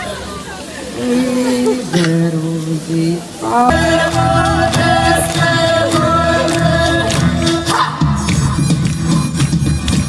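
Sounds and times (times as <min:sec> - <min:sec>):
low busy bass: 0:01.0 - 0:10.0
drums steady beat: 0:03.7 - 0:10.0.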